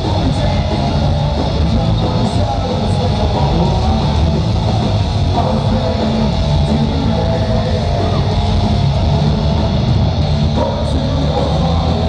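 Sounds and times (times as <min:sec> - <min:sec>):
punk rock band playing live: 0:00.0 - 0:12.0.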